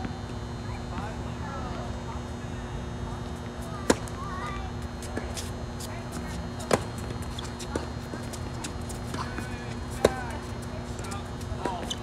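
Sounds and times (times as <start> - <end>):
racket hitting tennis ball: 3.8 - 4.1, 6.6 - 10.3
tennis ball bouncing: 3.8 - 4.1, 6.1 - 10.3.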